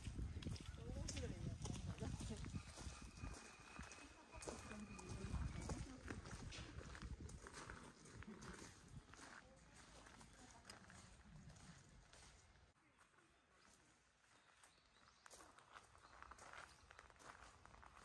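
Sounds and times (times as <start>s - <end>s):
footsteps on gravel: 0.0s - 18.0s.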